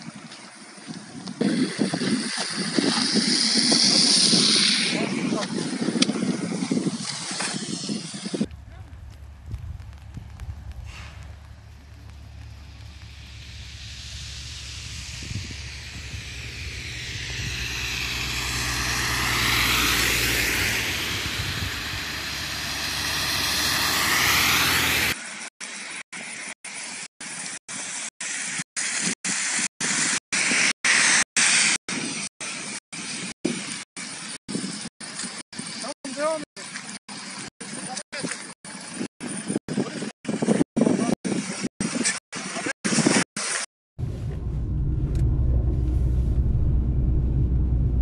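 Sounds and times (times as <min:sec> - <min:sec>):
tyres hissing on wet slush: 0:00.5 - 0:39.0
wind buffeting microphone: 0:00.9 - 0:25.2, 0:44.0 - 0:48.0.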